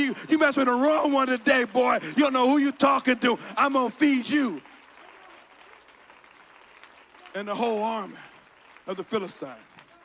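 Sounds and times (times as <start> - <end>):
faint applause: 0.0 - 10.0.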